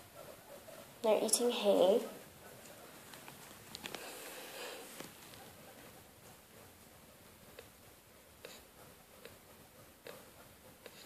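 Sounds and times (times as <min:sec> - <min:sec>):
small animals chewing hay: 0:00.0 - 0:11.0.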